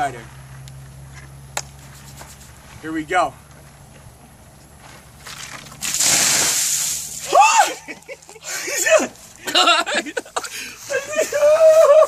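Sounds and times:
steady low hum: 0:00.0 - 0:05.8.

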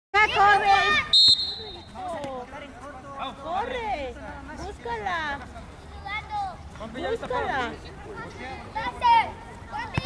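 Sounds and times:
referee's whistle blast: 0:01.1 - 0:01.9
children's voices: 0:05.8 - 0:06.7, 0:08.0 - 0:10.0.

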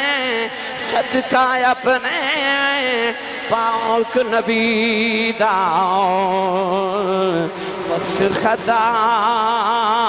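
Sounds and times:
man singing held note with vibrato: 0:00.0 - 0:10.0.

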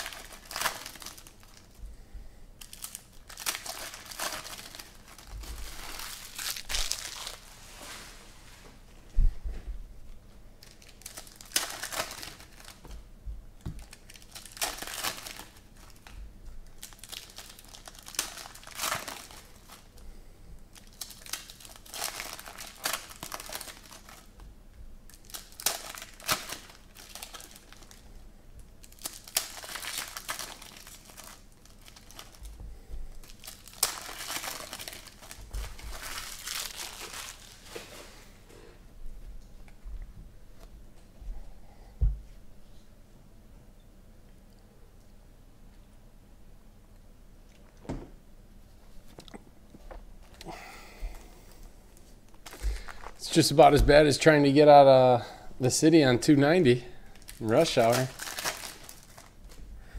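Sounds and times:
foil wrappers crinkling and tearing: 0:00.0 - 0:01.8, 0:02.6 - 0:08.0, 0:10.6 - 0:13.0, 0:13.6 - 0:20.0, 0:20.7 - 0:24.4, 0:25.0 - 0:28.2, 0:28.8 - 0:38.2, 0:50.2 - 0:59.6.

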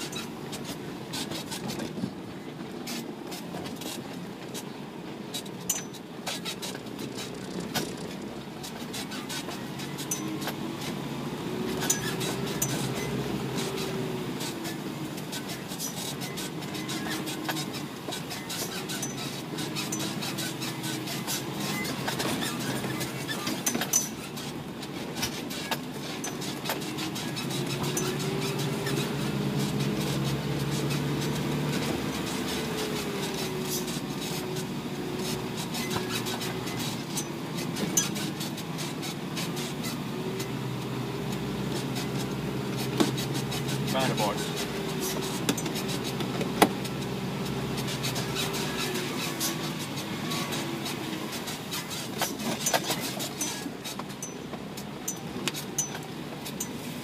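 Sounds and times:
diesel truck engine running: 0:00.0 - 0:57.0
small rattles and clicks: 0:05.3 - 0:57.0.

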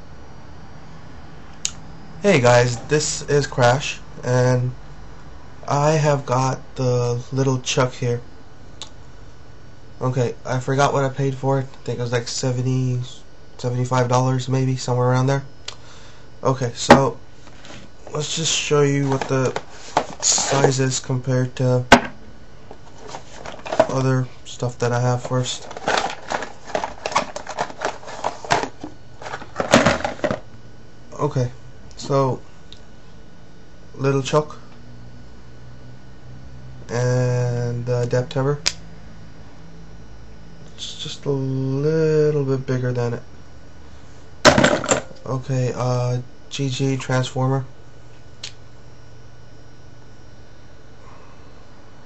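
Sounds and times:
low hum with hiss: 0:00.0 - 0:52.0.

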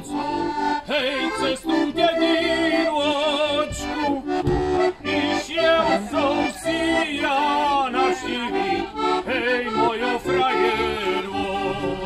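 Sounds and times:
men singing: 0:00.0 - 0:04.2, 0:05.1 - 0:12.0
button accordion folk tune: 0:00.0 - 0:12.0.

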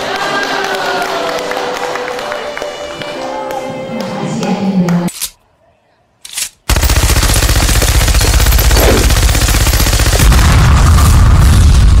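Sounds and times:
rapid rattle of bursts: 0:06.7 - 0:10.3.

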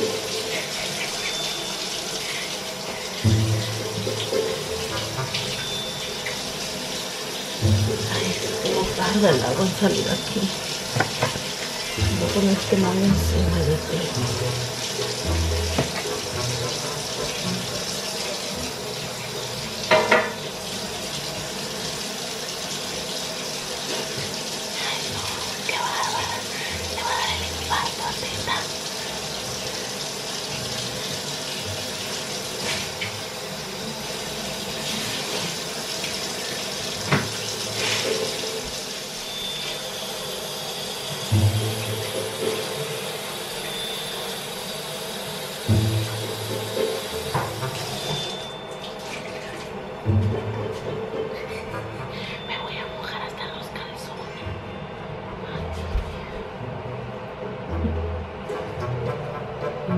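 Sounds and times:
sink tap running: 0:00.0 - 0:49.8
knocks and clatters at sink: 0:10.9 - 0:11.6, 0:19.9 - 0:20.5.

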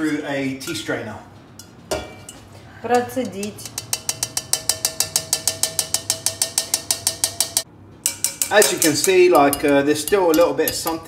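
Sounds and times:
metal strainer tapping on pan: 0:02.9 - 0:11.0.

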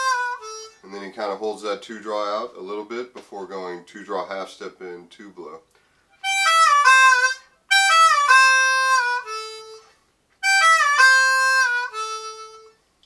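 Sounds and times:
harmonica with bent notes: 0:00.0 - 0:01.4, 0:06.1 - 0:12.9.

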